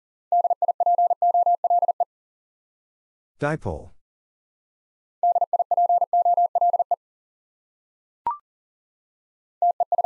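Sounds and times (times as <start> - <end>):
morse code tone: 5.2 - 7.0.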